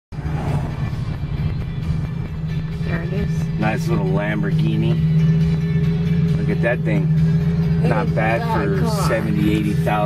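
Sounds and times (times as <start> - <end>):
car cabin rumble: 0.1 - 10.0
music playing: 0.2 - 10.0.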